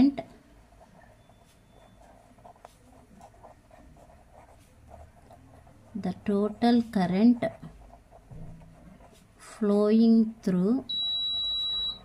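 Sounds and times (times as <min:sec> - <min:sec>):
pen scratching on paper: 0:00.7 - 0:09.7.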